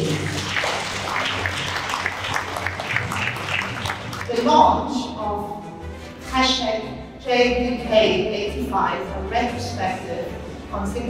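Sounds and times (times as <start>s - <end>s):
people applauding: 0.0s - 4.5s.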